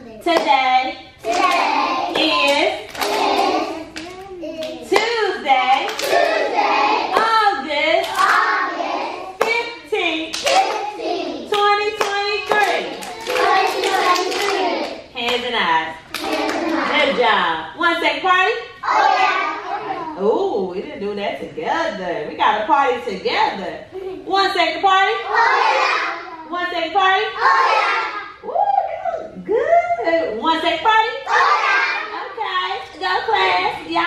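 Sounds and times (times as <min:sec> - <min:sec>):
children chanting: 0:01.2 - 0:04.8, 0:05.9 - 0:07.2, 0:08.1 - 0:09.4, 0:10.4 - 0:11.5, 0:12.9 - 0:15.1, 0:16.2 - 0:17.2, 0:18.8 - 0:20.1, 0:25.2 - 0:26.4, 0:27.4 - 0:28.4, 0:31.2 - 0:32.2
hand claps: 0:01.3 - 0:05.1, 0:11.5 - 0:15.4.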